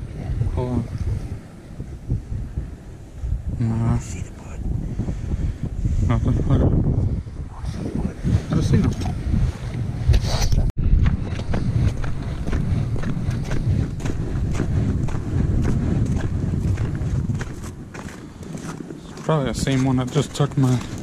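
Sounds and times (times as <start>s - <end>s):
wind buffeting microphone: 0.0s - 21.0s
footsteps on ice: 11.0s - 21.0s.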